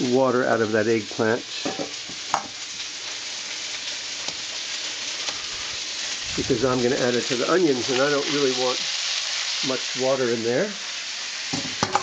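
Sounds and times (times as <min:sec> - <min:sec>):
onions sizzling in oil: 0:00.0 - 0:12.0.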